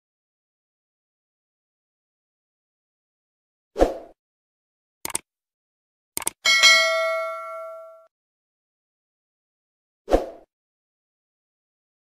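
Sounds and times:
mouse clicks: 0:06.2 - 0:06.4
notification bell ding: 0:06.5 - 0:08.1.

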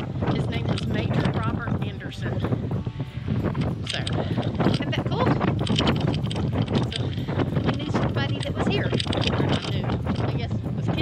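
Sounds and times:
woman talking: 0:00.0 - 0:02.6, 0:03.8 - 0:05.5, 0:06.7 - 0:11.0
strong wind buffeting microphone: 0:00.0 - 0:11.0.

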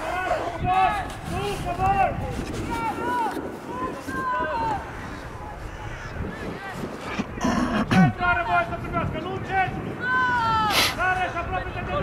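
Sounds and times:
faint voices calling: 0:00.0 - 0:12.0
rush of noise: 0:02.2 - 0:11.7.

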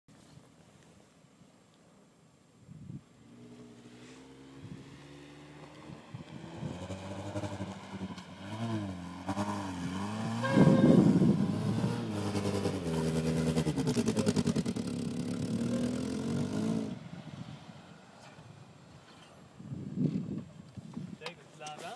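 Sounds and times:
car engine revving: 0:03.2 - 0:17.1.

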